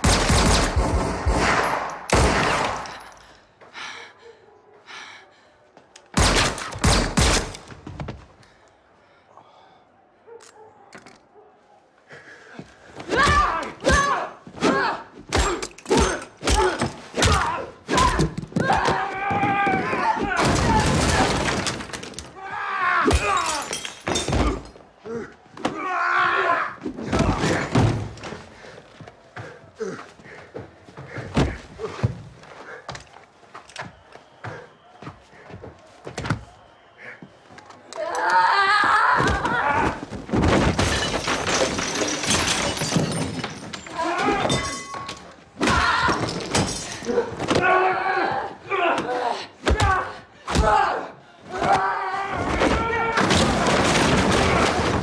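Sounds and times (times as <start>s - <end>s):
debris clattering: 20.4s - 22.4s, 40.0s - 47.4s, 52.5s - 55.0s
bodies crashing onto floor: 27.0s - 28.5s, 39.2s - 47.6s, 52.4s - 55.0s.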